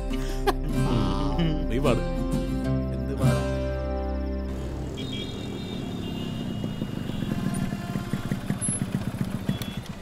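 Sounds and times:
motorcycle engine chugging: 4.4s - 10.0s.

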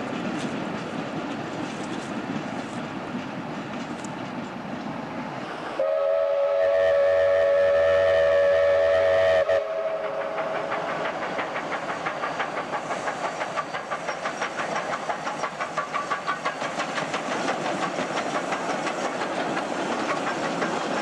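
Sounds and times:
steam locomotive chuffing: 0.0s - 21.0s
steam locomotive whistle: 5.5s - 11.0s.

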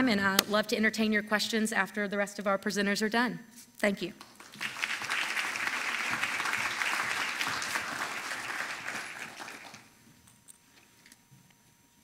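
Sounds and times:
audience applause: 4.4s - 9.9s.

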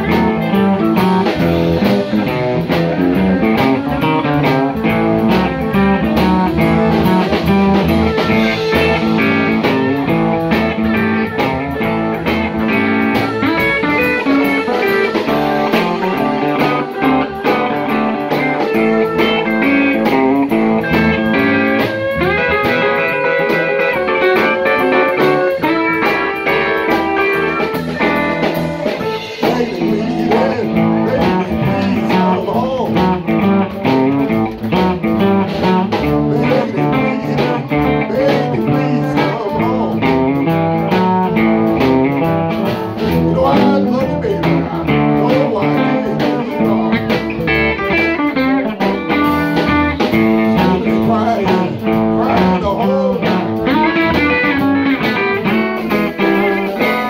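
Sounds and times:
drum kit with cymbal beat: 0.0s - 57.0s
electric bass: 0.0s - 57.0s
electric lead guitar: 0.0s - 57.0s
second electric guitar: 0.0s - 57.0s.

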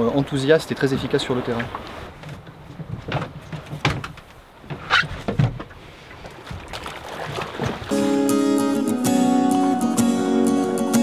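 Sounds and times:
wind and water rushing: 0.0s - 3.5s, 5.5s - 8.4s.

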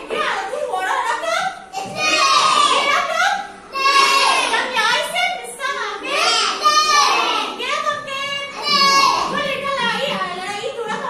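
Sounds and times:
woman talking: 0.0s - 1.7s, 2.6s - 3.5s, 4.5s - 6.3s, 7.5s - 11.0s
young children talking: 0.0s - 11.0s.

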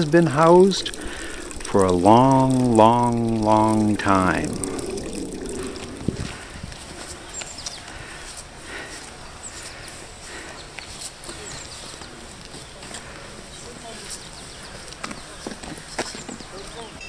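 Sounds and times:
footsteps on paved path: 0.0s - 17.0s
outdoor background hiss: 0.0s - 17.0s.

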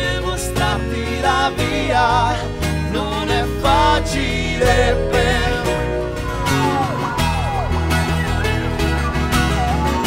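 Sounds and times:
acoustic guitars strummed and picked: 0.0s - 10.0s.

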